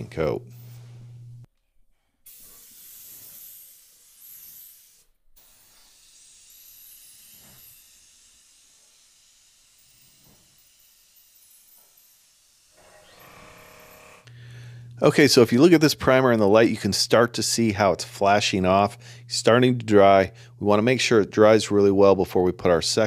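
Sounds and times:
spray gun hissing: 2.3 - 10.7.

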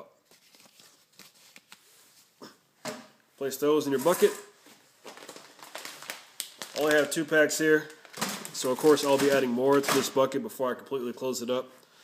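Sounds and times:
cardboard pieces rustling: 8.0 - 10.1.

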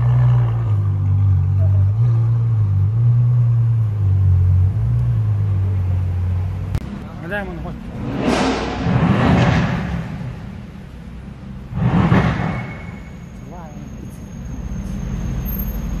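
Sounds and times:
low engine rumble: 0.0 - 16.0
sports car engine revving: 7.6 - 12.4.

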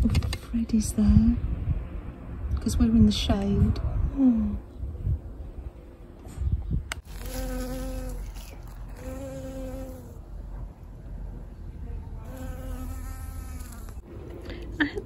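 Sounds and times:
bee buzzing in flight: 7.1 - 10.2, 12.3 - 14.0.

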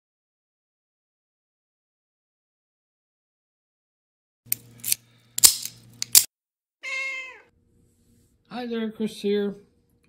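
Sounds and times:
cat meowing: 6.8 - 7.5.

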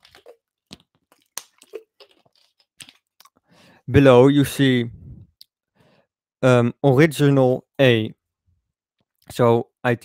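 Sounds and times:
person sipping and swallowing: 1.1 - 3.4.

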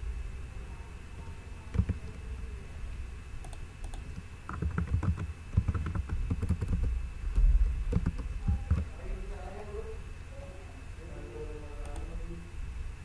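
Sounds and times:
typing on computer keyboard: 1.7 - 2.1, 3.4 - 6.9, 7.9 - 8.9.

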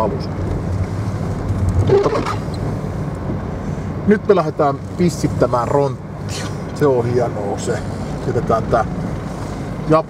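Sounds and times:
car engine low hum: 0.0 - 10.0.

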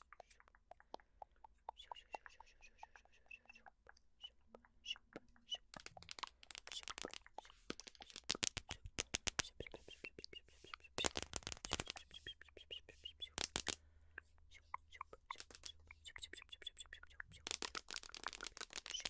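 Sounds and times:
mouth clicks and pops: 0.0 - 19.0.

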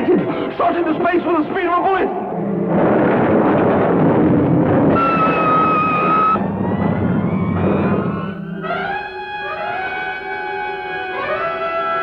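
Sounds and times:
high electronic tone: 5.0 - 6.4.

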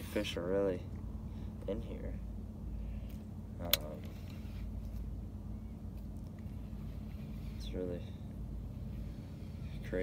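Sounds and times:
boat motor humming: 2.2 - 10.0.

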